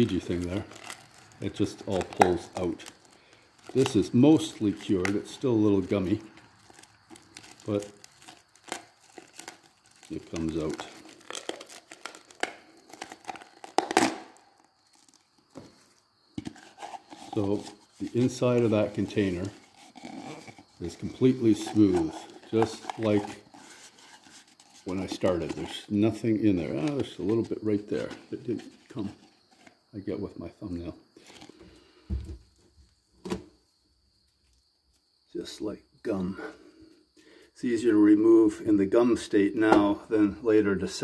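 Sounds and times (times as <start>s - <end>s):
plastic container handling: 0.0s - 14.4s, 15.0s - 29.8s
plastic tub crinkling: 0.0s - 29.8s.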